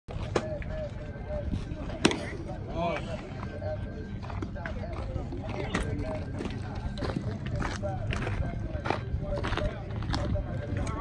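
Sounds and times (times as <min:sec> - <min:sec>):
people chatting: 0:00.1 - 0:11.0.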